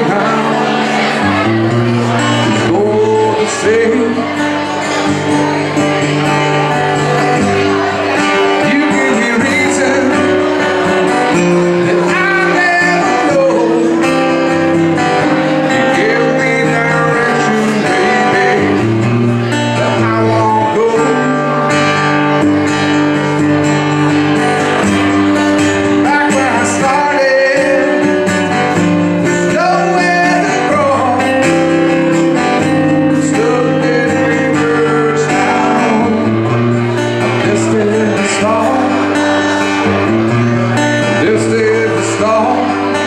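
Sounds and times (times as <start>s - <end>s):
acoustic guitar: 0.0s - 43.0s
man singing: 0.0s - 43.0s.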